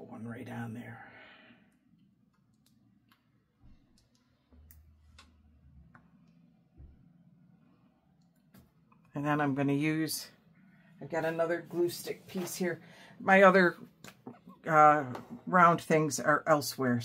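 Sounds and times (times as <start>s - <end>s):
faint clicks and light taps: 2.0s - 6.9s.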